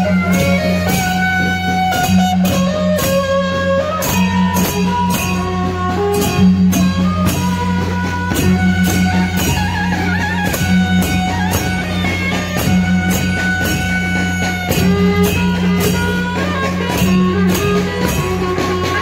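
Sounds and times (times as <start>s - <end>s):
drums beating steady rhythm: 0.0s - 19.0s.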